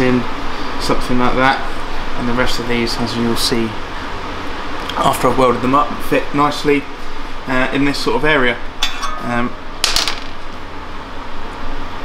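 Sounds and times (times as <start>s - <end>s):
fan-like hiss: 0.0s - 12.0s.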